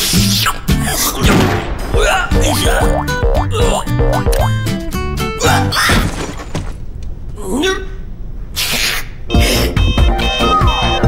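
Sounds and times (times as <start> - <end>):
cartoon music with heavy beat: 2.2 - 4.9, 9.3 - 11.0.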